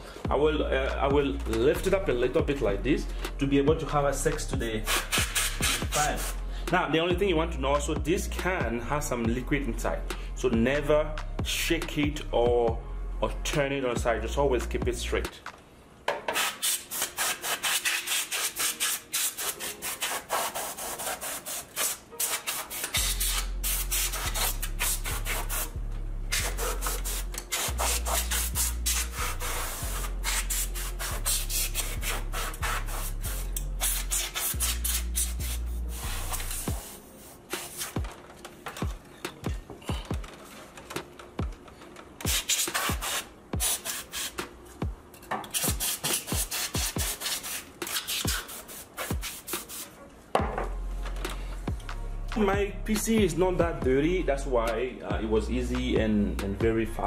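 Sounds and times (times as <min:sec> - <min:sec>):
compressed air spray hissing bursts: 0:26.3 - 0:38.0, 0:42.3 - 0:44.4, 0:45.6 - 0:50.0.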